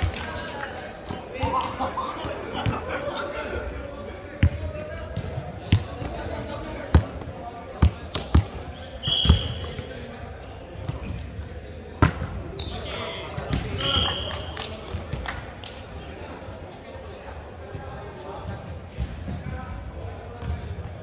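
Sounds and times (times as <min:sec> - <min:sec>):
volleyball hits echoing in gym: 0:01.0 - 0:03.0, 0:04.4 - 0:10.1, 0:11.9 - 0:15.5, 0:17.7 - 0:21.0.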